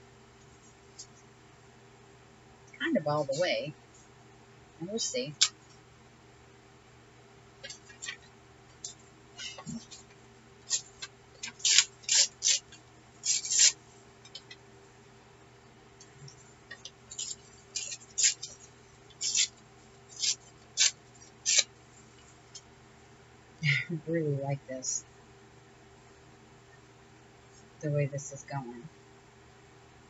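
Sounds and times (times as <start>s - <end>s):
faint steady hum: 0.0s - 30.0s
paper crackling rustles: 7.6s - 14.6s, 16.7s - 21.7s.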